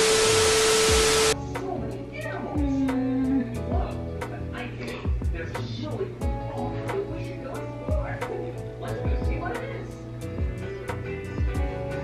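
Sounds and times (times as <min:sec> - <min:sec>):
static hiss with low tone: 0:00.0 - 0:01.4
background music: 0:00.2 - 0:12.0.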